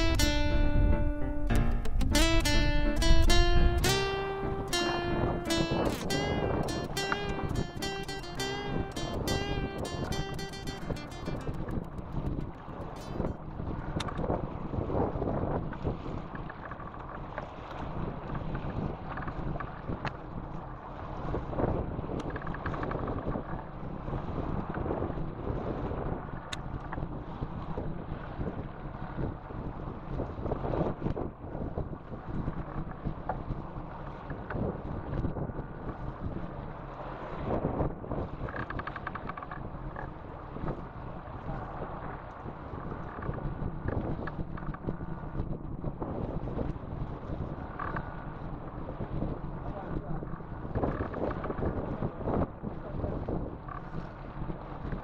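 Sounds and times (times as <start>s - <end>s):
wind buffeting microphone: 0.0s - 55.0s
sea washing around hull: 2.2s - 55.0s.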